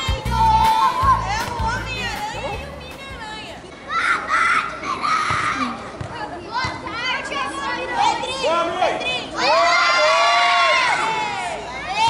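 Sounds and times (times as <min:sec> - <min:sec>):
children shouting: 0:00.0 - 0:02.8, 0:03.8 - 0:05.8, 0:09.2 - 0:12.0.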